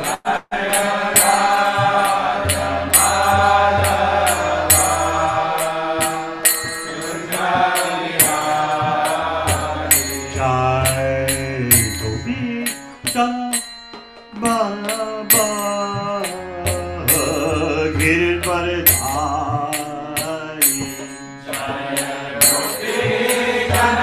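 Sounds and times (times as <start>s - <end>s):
beat of sharp strikes: 0.0s - 24.0s
man chanting: 7.0s - 13.6s, 14.4s - 21.0s.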